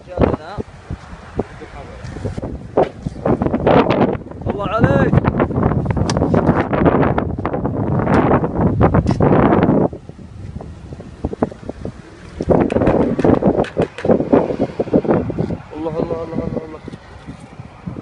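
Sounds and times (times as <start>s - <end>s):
rumbling wind on microphone: 0.0s - 18.0s
sharp clicks and scrapes: 5.9s - 6.7s, 12.2s - 14.2s.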